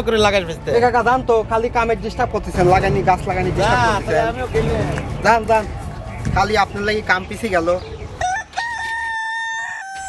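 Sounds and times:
rooster crowing: 8.2s - 10.0s.

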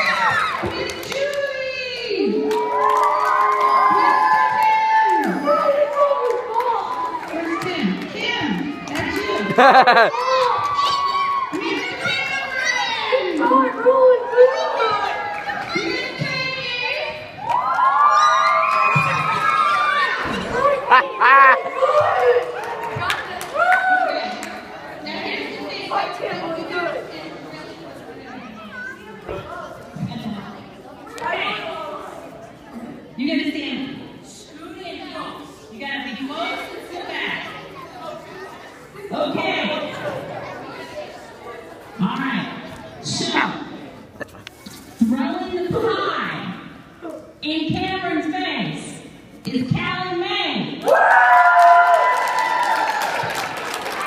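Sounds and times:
children shouting and chattering: 0.0s - 47.4s.

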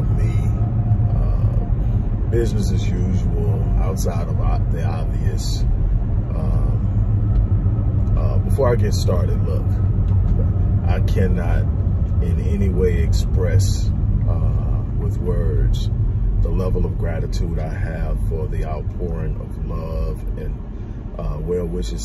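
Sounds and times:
man talking: 0.0s - 5.6s, 6.3s - 6.9s, 8.1s - 9.8s, 10.8s - 20.6s, 21.2s - 22.0s
car rumbling on road: 0.0s - 22.0s.

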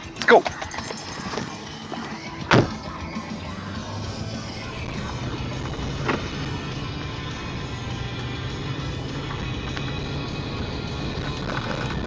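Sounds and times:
truck engine idling: 0.0s - 12.0s
truck door shutting: 1.3s - 3.1s, 4.6s - 6.7s.

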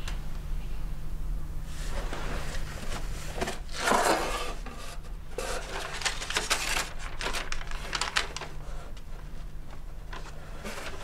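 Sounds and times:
paper rustling: 1.8s - 11.0s.

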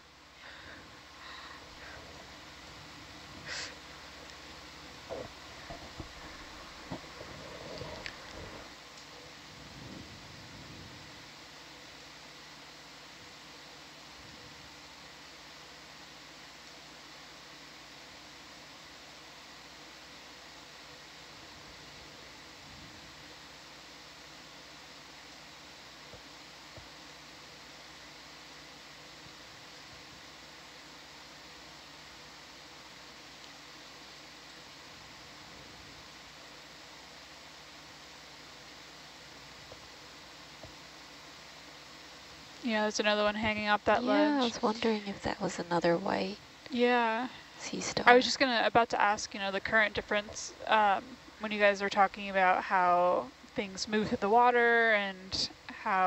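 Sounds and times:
faint electrical hum: 0.0s - 56.0s
steady low hiss: 0.0s - 56.0s.

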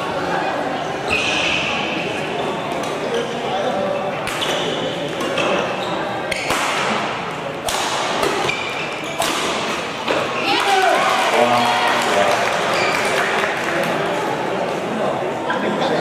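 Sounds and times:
chatter of spectators: 0.0s - 16.0s
shoes squeaking on court: 4.4s - 6.5s, 8.4s - 9.3s.

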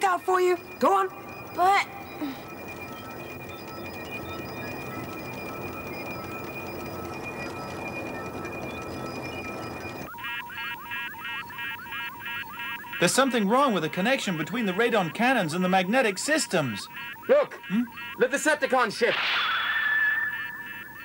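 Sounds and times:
rapid electronic beeping: 0.0s - 21.0s.

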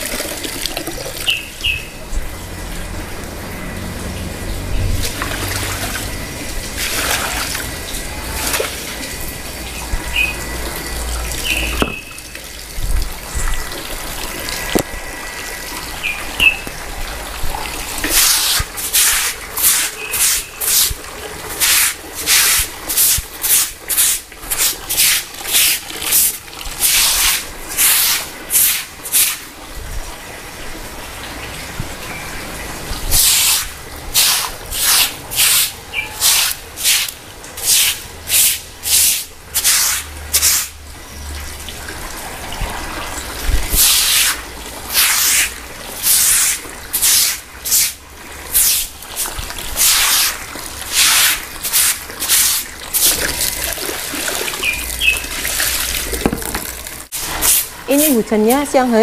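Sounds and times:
broom sweeping water on concrete: 3.8s - 14.8s, 17.4s - 29.6s, 32.8s - 40.8s, 42.0s - 59.0s.

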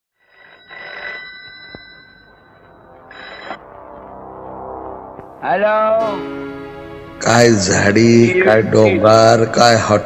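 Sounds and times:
telephone bell ringing: 0.2s - 3.6s.

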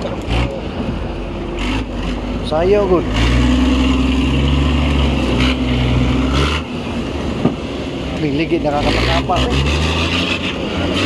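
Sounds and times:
pickup engine working hard: 0.0s - 11.0s.

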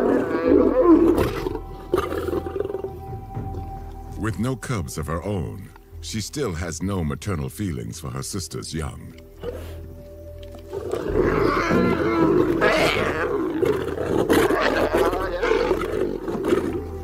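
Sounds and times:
lions snarling and growling: 0.0s - 3.1s, 9.4s - 9.9s, 10.6s - 17.0s
music: 0.0s - 17.0s.

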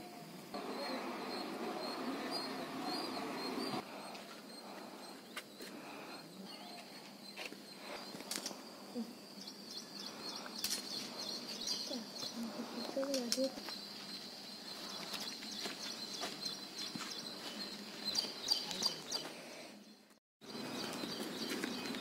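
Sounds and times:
steady noise: 0.5s - 5.1s
small birds chirping: 0.5s - 22.0s.

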